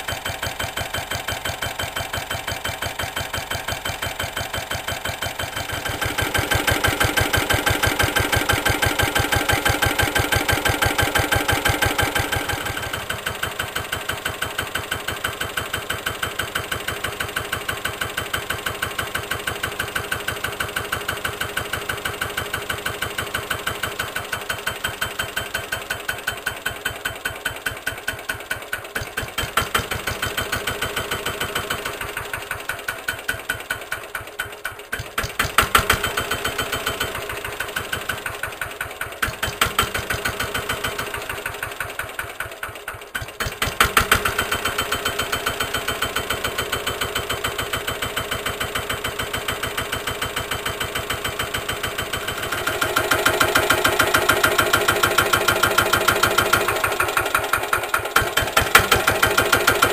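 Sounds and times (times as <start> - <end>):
diesel engine idling: 0.0 - 59.9.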